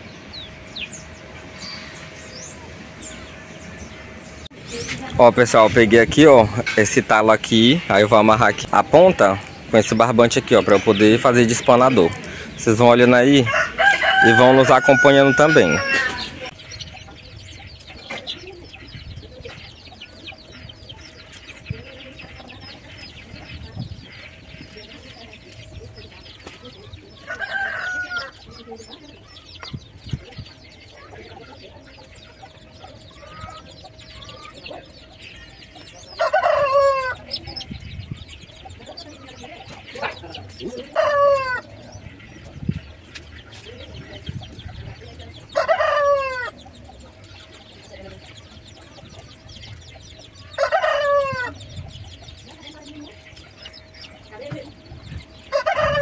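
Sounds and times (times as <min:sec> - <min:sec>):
chickens calling: 0:00.0 - 0:56.0.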